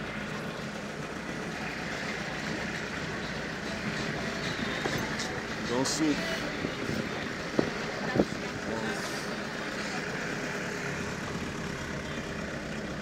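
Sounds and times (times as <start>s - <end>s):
vehicle and street noise: 0.0s - 13.0s.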